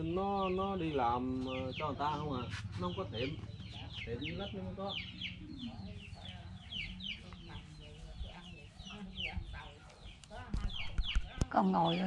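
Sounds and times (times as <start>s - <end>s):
chickens calling: 0.0s - 12.0s.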